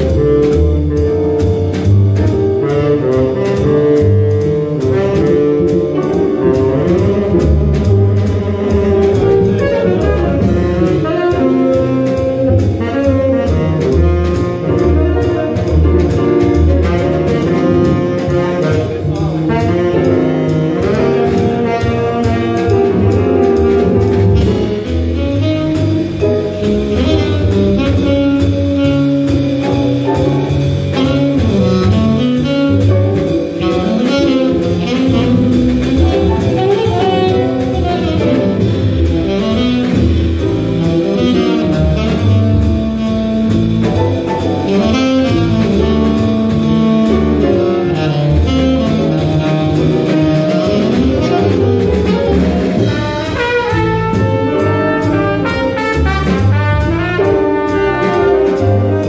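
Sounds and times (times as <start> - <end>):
jazz band playing swing: 0.0 - 59.0
saxophone lead: 2.4 - 30.1, 30.8 - 59.0.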